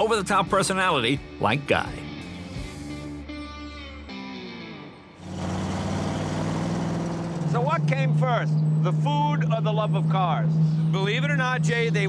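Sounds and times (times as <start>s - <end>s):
electric guitar music: 2.1s - 5.2s
car engine running steadily: 5.2s - 12.0s.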